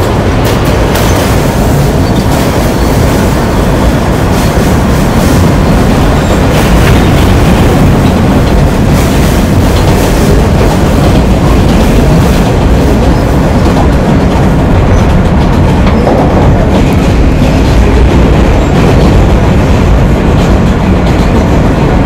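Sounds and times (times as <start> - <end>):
train rumbling on rails: 0.0 - 22.0.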